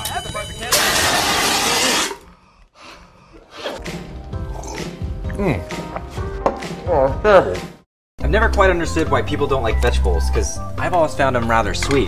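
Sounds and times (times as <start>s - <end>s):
background music: 3.8s - 12.0s.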